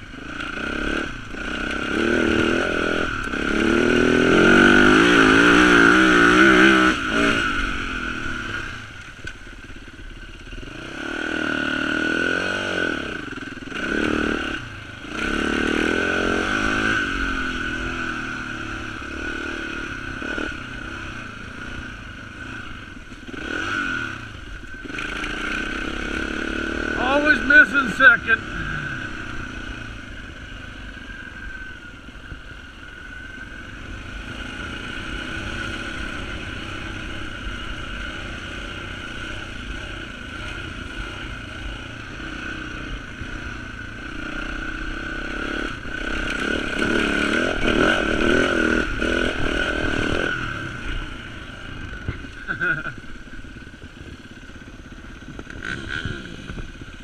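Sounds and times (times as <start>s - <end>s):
dirt bike engine revving: 0.0s - 9.0s, 10.1s - 57.0s.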